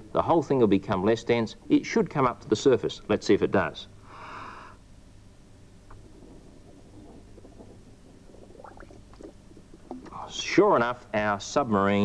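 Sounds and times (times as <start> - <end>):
faint water gurgling: 5.4 - 12.0
breath blown through tube: 5.9 - 10.4.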